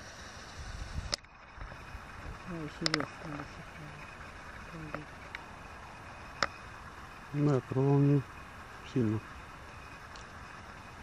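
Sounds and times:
wind rumble on microphone: 0:00.5 - 0:07.2.

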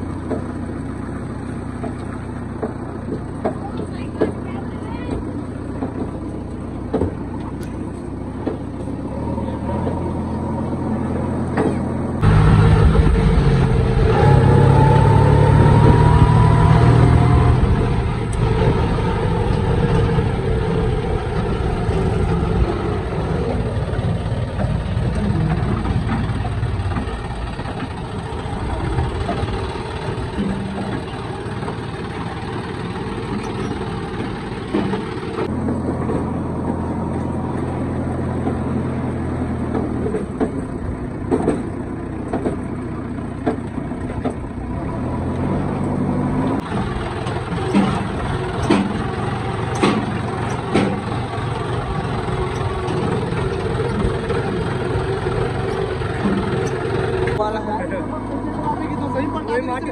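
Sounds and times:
diesel engine running: 0:00.0 - 0:59.9
whine: 0:12.2 - 0:35.5.

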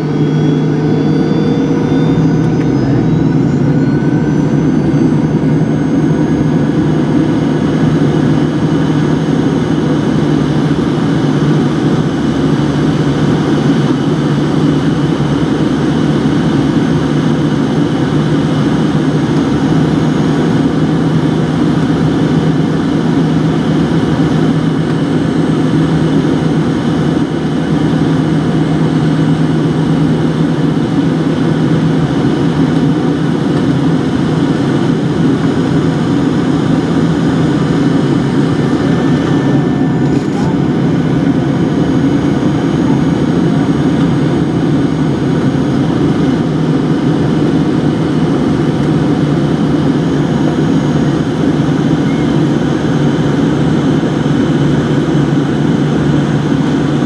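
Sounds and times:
airliner engine hum: 0:00.0 - 0:57.0.

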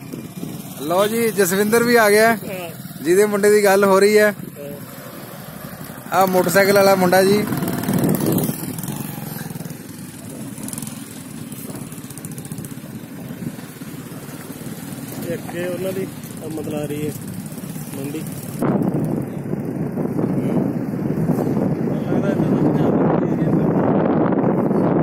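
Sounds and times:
wind on microphone: 0:00.0 - 0:03.3, 0:04.3 - 0:25.0
vehicle driving on dirt road: 0:00.0 - 0:25.0.

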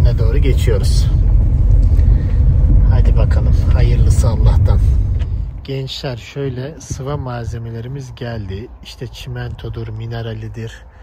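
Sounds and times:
car engine rumble: 0:00.0 - 0:11.0
road noise: 0:00.0 - 0:11.0.

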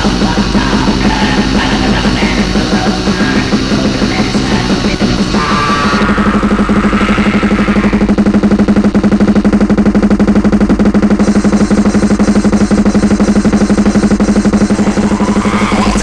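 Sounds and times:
distorted guitar: 0:00.0 - 0:16.0
fast drumming: 0:00.0 - 0:16.0
harsh high layer: 0:00.0 - 0:16.0.

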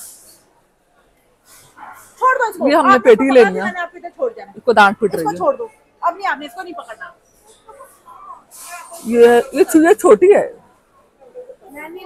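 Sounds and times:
woman speaking: 0:02.2 - 0:07.1, 0:09.0 - 0:10.6.

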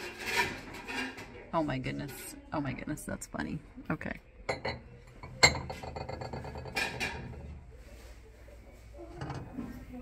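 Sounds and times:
dish scraping: 0:00.0 - 0:02.4, 0:04.5 - 0:07.7, 0:09.0 - 0:10.0
ceramic dish clink: 0:04.5 - 0:07.1.

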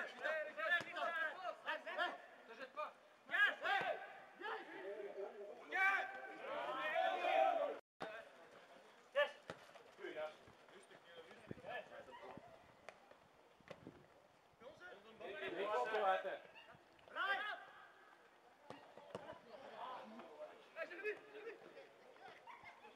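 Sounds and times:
players and spectators shouting: 0:03.3 - 0:07.8.

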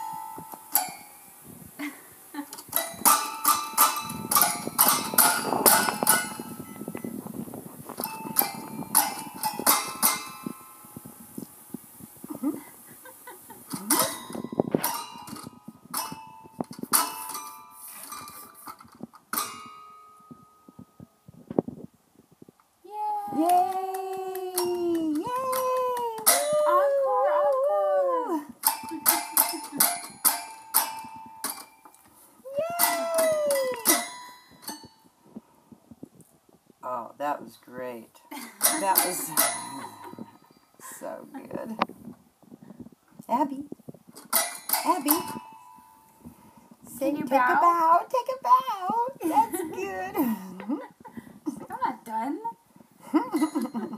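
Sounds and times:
toy piano keys banged: 0:02.6 - 0:07.2, 0:08.0 - 0:10.6, 0:25.5 - 0:26.8, 0:28.6 - 0:31.9, 0:32.8 - 0:35.0, 0:44.3 - 0:45.8
baby squealing: 0:32.5 - 0:34.0.

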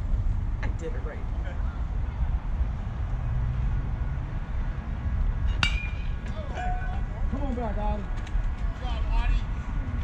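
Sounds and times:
bat hitting ball metallic ping: 0:05.5 - 0:06.3
voices calling out: 0:05.5 - 0:10.0.

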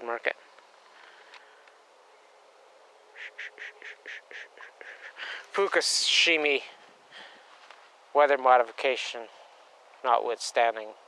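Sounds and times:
faint background hiss: 0:00.0 - 0:11.0
bird harsh calls: 0:03.1 - 0:05.6.

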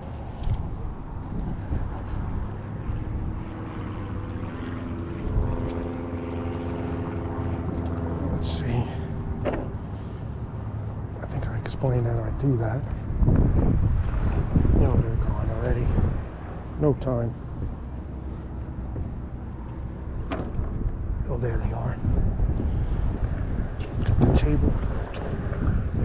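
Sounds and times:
distant engine humming: 0:00.0 - 0:26.0
wind rumble on microphone: 0:00.0 - 0:26.0.

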